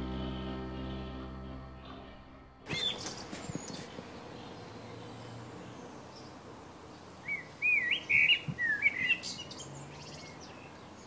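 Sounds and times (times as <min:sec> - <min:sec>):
faint outdoor background noise: 0:00.0 - 0:11.0
songbird singing: 0:00.0 - 0:11.0.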